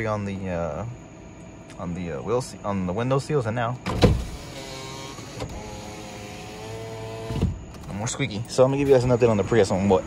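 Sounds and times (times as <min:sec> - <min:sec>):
power window motor whining: 0:03.9 - 0:08.0.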